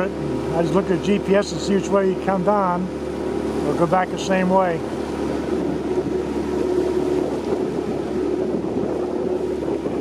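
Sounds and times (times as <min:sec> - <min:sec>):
outboard motor running: 0:00.0 - 0:10.0
wind rushing over microphone: 0:00.0 - 0:10.0.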